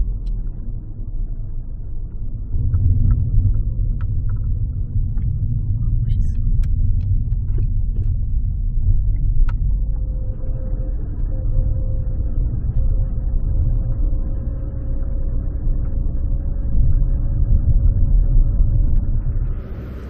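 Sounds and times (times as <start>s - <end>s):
faint steady whine: 0.0s - 20.0s
tyres and engine rumble: 0.0s - 20.0s.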